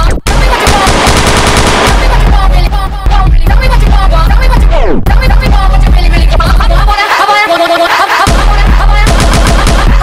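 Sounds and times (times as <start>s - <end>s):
heavy bass-kick beat: 1.7s - 6.9s, 8.3s - 10.0s
club remix music: 1.8s - 10.0s.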